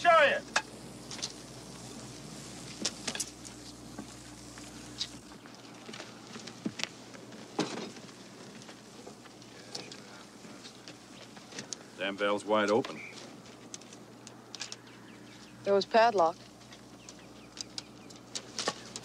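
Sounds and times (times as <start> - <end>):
steady hiss: 0.0 - 19.0
crackles and pops of smouldering wreckage: 0.2 - 15.5, 16.1 - 19.0.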